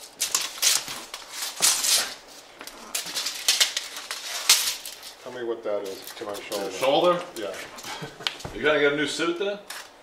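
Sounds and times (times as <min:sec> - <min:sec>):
tape measure scraping and rustling: 0:00.0 - 0:07.6, 0:09.7 - 0:10.0.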